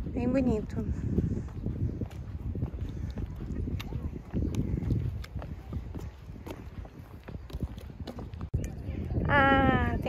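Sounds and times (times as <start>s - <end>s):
footsteps on wooden boards: 0.3s - 8.6s.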